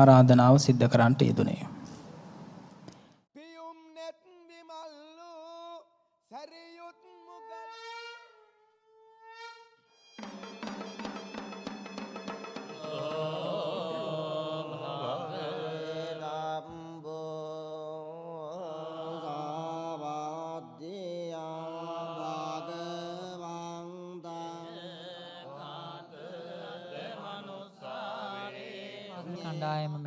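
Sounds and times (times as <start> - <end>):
monks chanting into microphones: 12.6 - 30.0
low drone of voices: 12.8 - 16.5.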